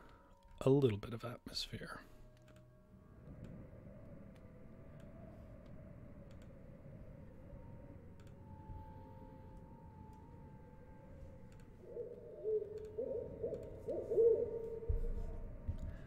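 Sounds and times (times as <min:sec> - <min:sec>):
light clicks: 0:04.2 - 0:06.6, 0:12.6 - 0:14.0
owl hooting: 0:11.8 - 0:15.7.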